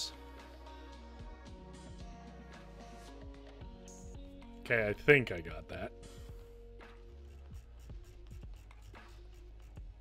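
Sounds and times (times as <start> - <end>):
faint background music: 0.0 - 10.0.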